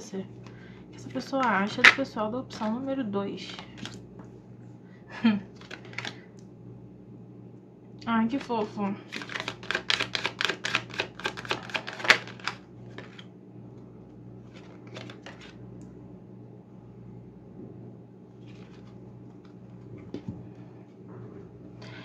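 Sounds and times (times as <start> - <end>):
deck of cards being shuffled: 5.5 - 6.2, 8.4 - 13.3, 14.4 - 15.6, 18.4 - 19.6.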